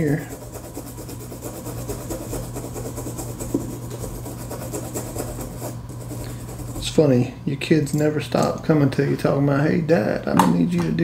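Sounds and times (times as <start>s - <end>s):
toothbrush scrubbing circuit board: 0.0s - 7.2s
low steady hum: 0.0s - 11.0s.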